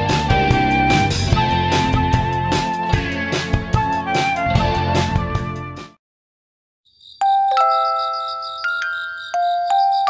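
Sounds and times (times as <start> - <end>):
glockenspiel chime notes: 7.2 - 10.0.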